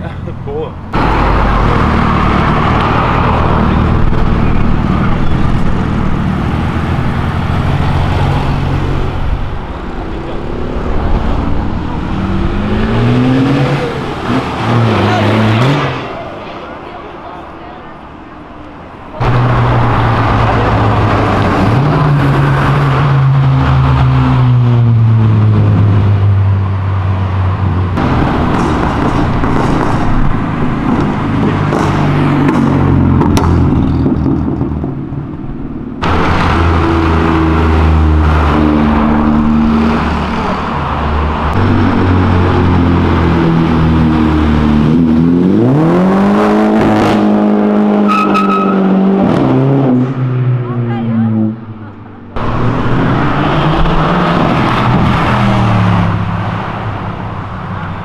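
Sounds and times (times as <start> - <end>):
car engines revving: 0.0 - 58.0.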